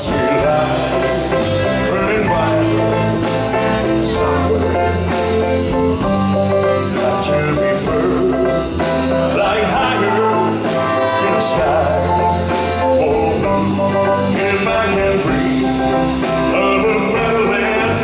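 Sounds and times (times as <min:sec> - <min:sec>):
man singing into microphone: 0:00.0 - 0:05.4, 0:06.6 - 0:18.0
live band music: 0:00.0 - 0:18.0.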